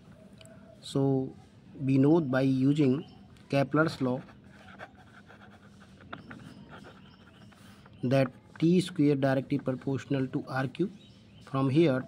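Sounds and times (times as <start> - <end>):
pen scratching on paper: 4.0 - 7.9.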